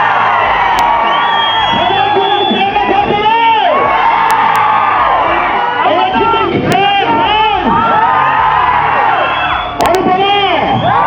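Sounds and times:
crowd cheering and whooping: 0.0s - 11.0s
voices shouting: 0.0s - 11.0s.

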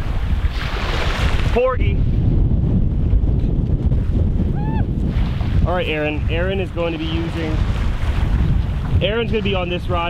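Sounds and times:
wind buffeting microphone: 0.0s - 10.0s
person exclaiming: 4.5s - 4.9s.

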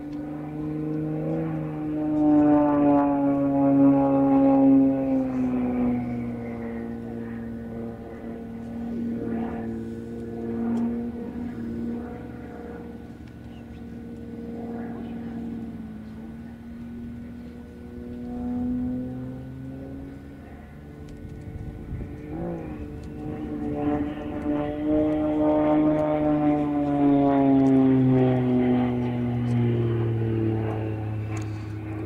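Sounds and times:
propeller plane engine droning: 0.0s - 32.0s.

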